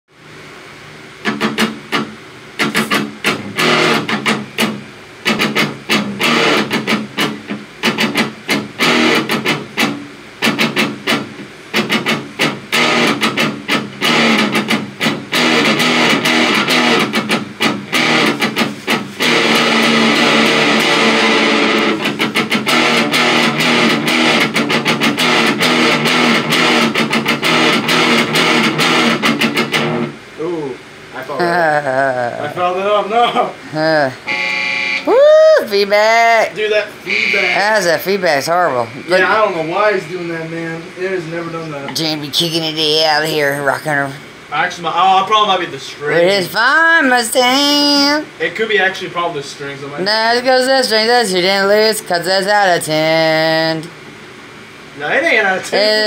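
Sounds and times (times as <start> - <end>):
electric guitar playing: 1.2 - 30.3, 33.8 - 39.8.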